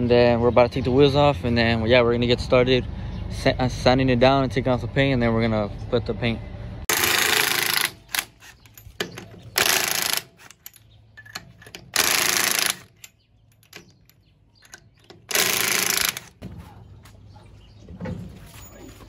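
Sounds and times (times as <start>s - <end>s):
small metallic clicks: 7.8s - 16.3s
impact wrench hammering: 9.0s - 14.1s, 14.7s - 16.4s.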